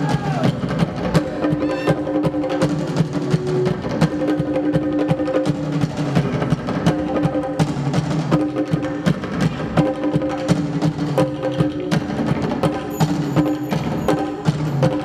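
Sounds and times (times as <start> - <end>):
drum kit and congas: 0.0 - 15.0
live band playing: 0.0 - 15.0.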